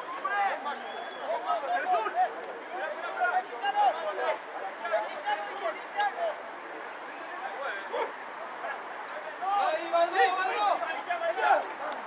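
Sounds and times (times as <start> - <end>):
distant shouts and calls: 0.0 - 12.0.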